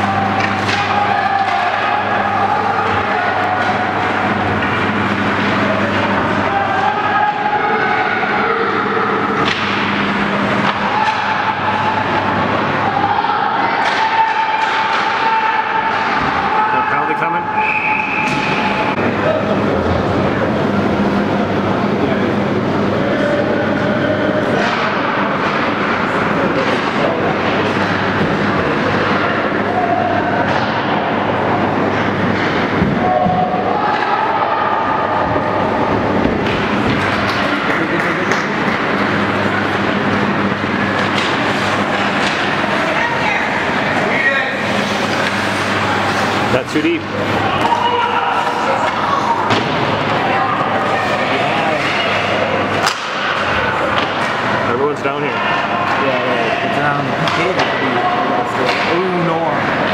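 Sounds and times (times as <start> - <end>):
steady low hum: 0.0 - 16.8, 17.4 - 59.9
spectators talking and calling out: 0.0 - 59.9
hockey sticks and puck clacking: 0.1 - 8.0, 9.4 - 10.0, 10.6 - 12.2, 13.8 - 16.6, 24.5 - 29.4, 30.4 - 31.2, 35.2 - 39.8, 40.9 - 43.8, 44.7 - 50.3, 51.0 - 54.6, 57.2 - 59.9
high whistle: 17.5 - 18.8.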